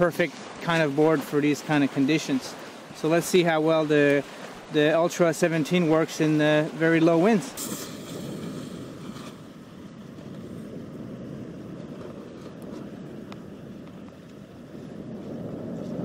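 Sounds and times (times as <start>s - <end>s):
wind blowing across microphone: 0.0s - 16.0s.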